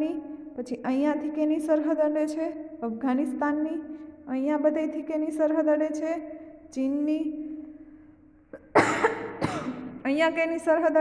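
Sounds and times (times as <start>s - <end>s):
woman coughing: 8.6s - 10.0s.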